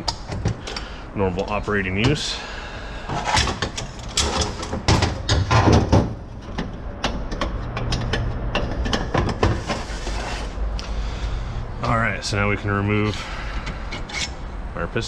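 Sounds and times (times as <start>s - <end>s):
metal clicks and clanks: 3.1s - 9.9s.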